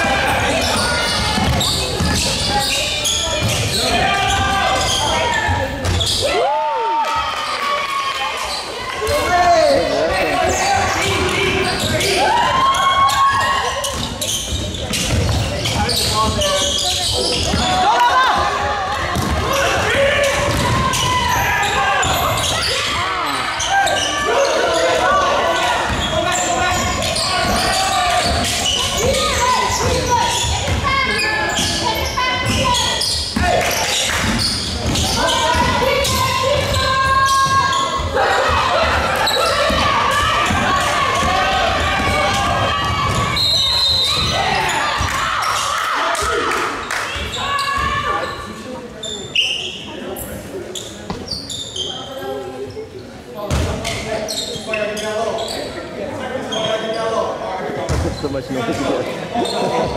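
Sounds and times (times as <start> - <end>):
players and spectators shouting: 0.0 - 14.4, 15.8 - 48.6.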